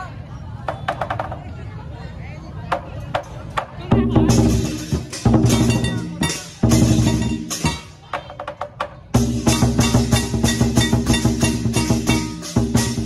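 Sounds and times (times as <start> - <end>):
drum beating: 0.6 - 1.5, 2.7 - 13.0
cymbals clashing: 4.3 - 8.0, 9.2 - 13.0.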